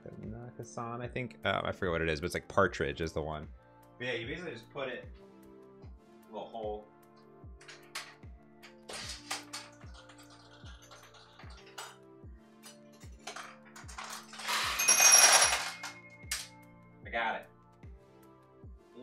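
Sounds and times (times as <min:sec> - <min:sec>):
steel balls clicking off pins: 0:12.6 - 0:16.5
ringing tones: 0:14.5 - 0:16.5.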